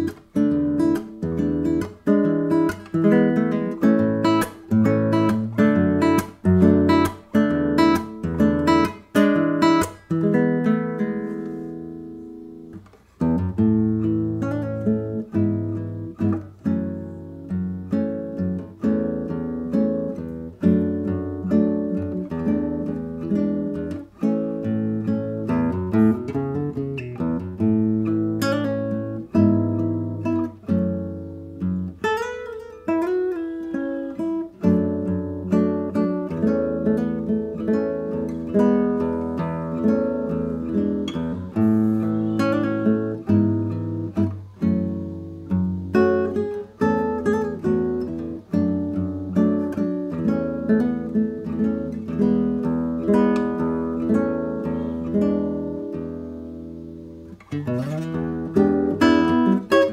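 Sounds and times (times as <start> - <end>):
fingerpicked classical guitar: 0.0 - 59.9.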